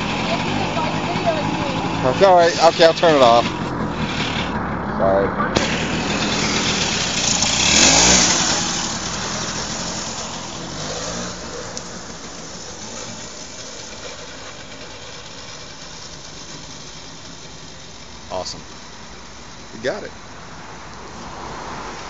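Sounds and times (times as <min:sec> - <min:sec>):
scooter engine revving: 0:00.0 - 0:19.0.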